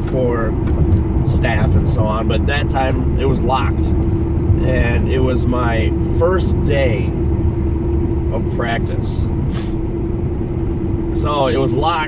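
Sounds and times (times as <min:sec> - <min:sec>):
car engine and road drone: 0:00.0 - 0:12.0
constant hum: 0:00.0 - 0:12.0.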